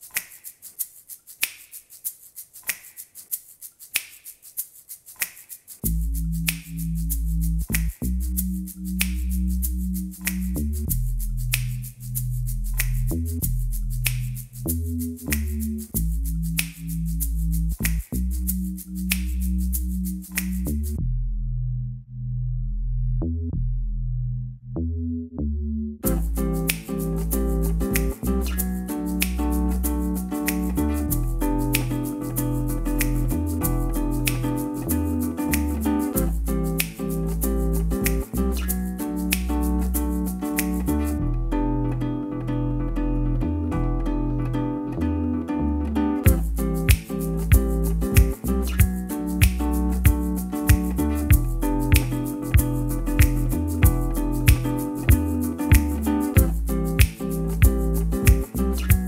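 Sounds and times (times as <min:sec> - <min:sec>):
snap-like accent: 0:00.0 - 0:00.7, 0:05.1 - 0:08.2, 0:08.9 - 0:12.0, 0:12.7 - 0:13.4, 0:14.0 - 0:14.5, 0:15.2 - 0:17.1, 0:17.7 - 0:18.3, 0:20.3 - 0:20.8, 0:26.0 - 0:41.2, 0:46.3 - 0:59.0
percussion clicks and taps: 0:00.0 - 0:21.0, 0:26.0 - 0:41.2, 0:46.2 - 0:59.0
low bass drone: 0:05.9 - 0:28.8
nylon-string guitar picking: 0:26.0 - 0:59.0.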